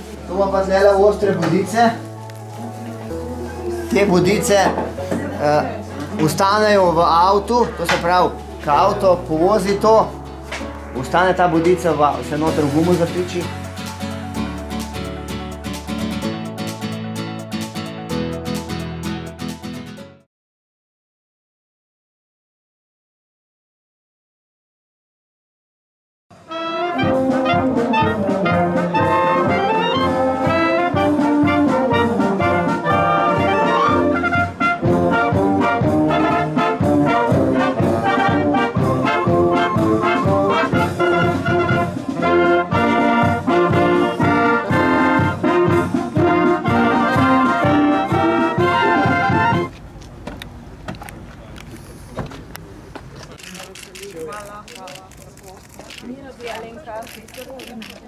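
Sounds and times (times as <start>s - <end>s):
wind band playing: 26.3s - 49.7s.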